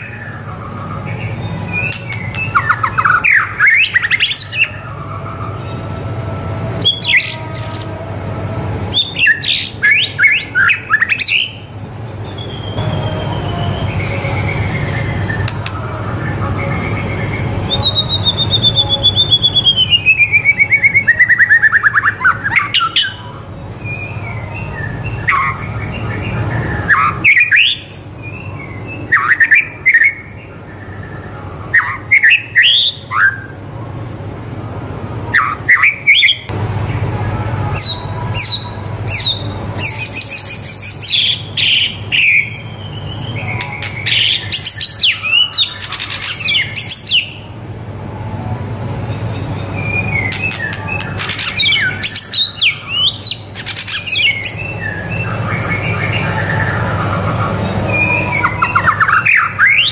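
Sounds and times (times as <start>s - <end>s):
bird singing whistled phrases: 8.9s - 15.7s, 16.4s - 33.5s, 49.0s - 56.9s, 57.5s - 59.9s.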